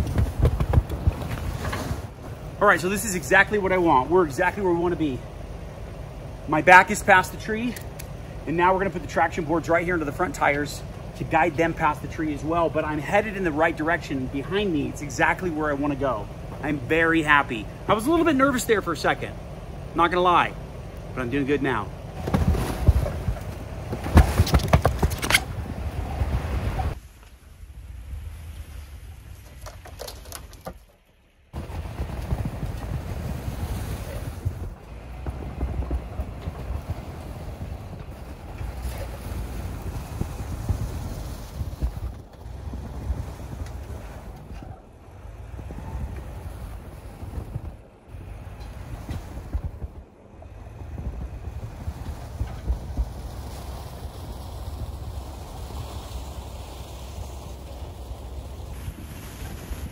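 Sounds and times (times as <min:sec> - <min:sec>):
wind buffeting microphone: 0:00.0 - 0:18.3, 0:22.0 - 0:27.0, 0:31.6 - 0:59.9
suv engine running: 0:00.0 - 0:27.0, 0:31.4 - 0:58.9.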